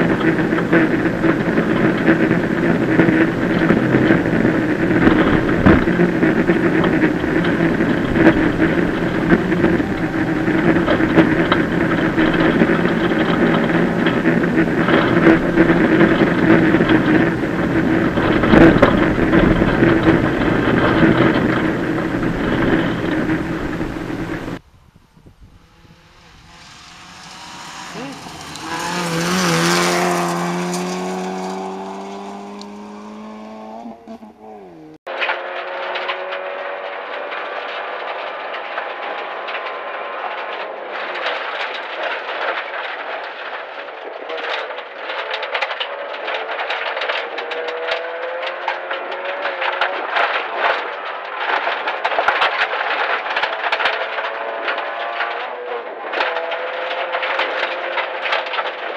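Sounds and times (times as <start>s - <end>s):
car engine running hard: 0.0s - 24.6s, 25.2s - 58.9s
road noise on gravel: 0.0s - 58.9s
car passing by: 25.6s - 34.2s.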